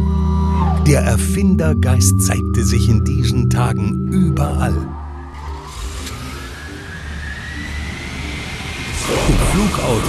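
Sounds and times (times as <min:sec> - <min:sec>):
thin rising whine: 0:00.0 - 0:10.0
steady jet-like hiss: 0:05.6 - 0:10.0.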